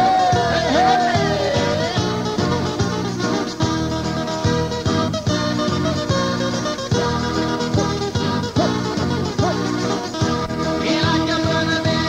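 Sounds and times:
sliding melody line: 0.0 - 12.0.

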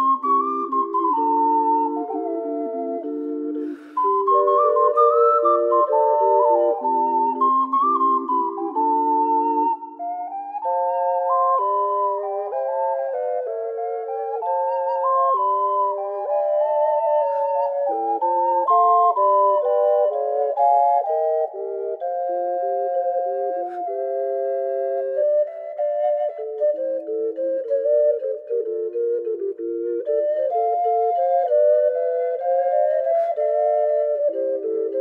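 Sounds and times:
ocarinas playing in harmony: 0.0 - 35.0.

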